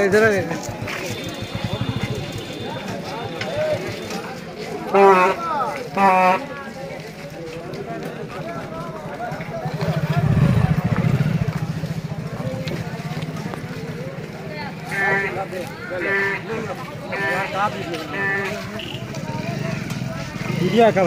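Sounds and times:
motorcycle engine running: 0.0 - 4.4, 8.0 - 17.3, 18.1 - 21.0.

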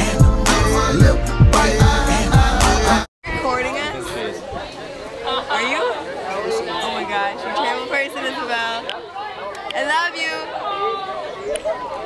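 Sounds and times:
overlapping group chatter: 3.2 - 12.0.

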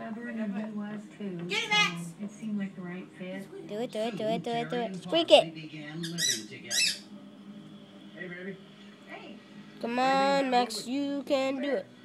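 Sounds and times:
squeaky toy ball squeaks: 6.1 - 7.0.

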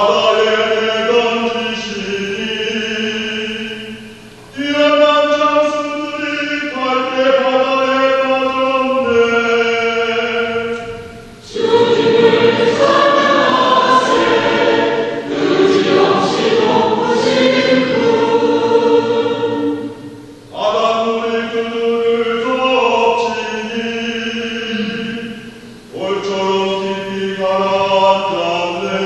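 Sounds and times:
church choir singing psalm: 0.0 - 29.0.

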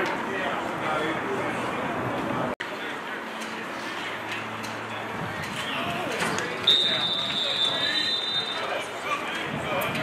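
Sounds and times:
referee's whistle blast: 6.6 - 8.7.

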